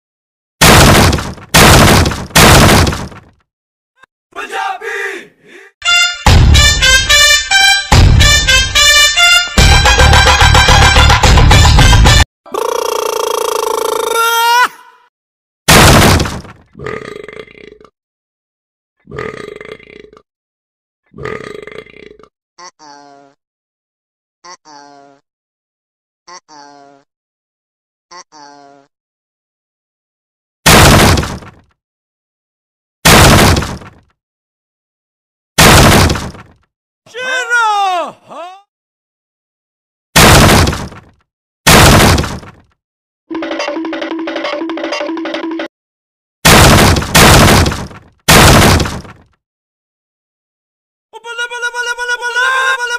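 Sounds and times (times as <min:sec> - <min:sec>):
croaky cartoon voice: 0:12.5 - 0:15.0, 0:22.6 - 0:23.4, 0:24.4 - 0:25.2, 0:26.3 - 0:27.1, 0:28.1 - 0:28.9, 0:51.2 - 0:52.9.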